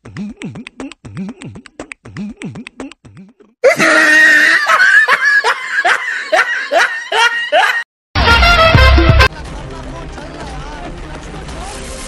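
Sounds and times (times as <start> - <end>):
loud high-pitched laughter: 3.6 - 7.8.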